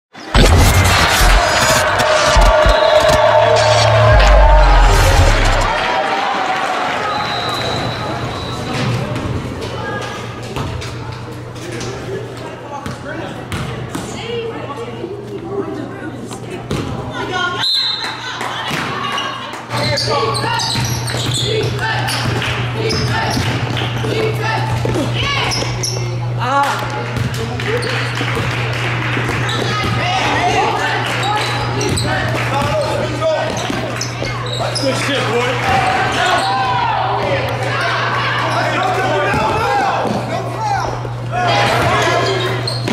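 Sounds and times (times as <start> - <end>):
steady low hum: 0.4 - 5.9
background chatter of voices: 7.2 - 42.9.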